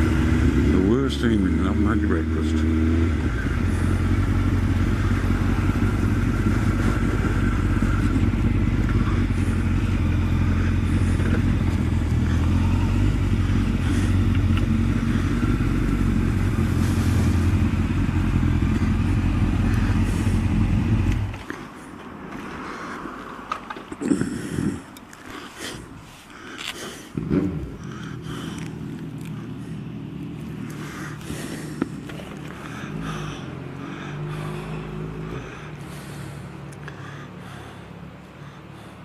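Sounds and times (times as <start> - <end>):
motorcycle engine running: 0.0 - 21.7, 26.6 - 37.7.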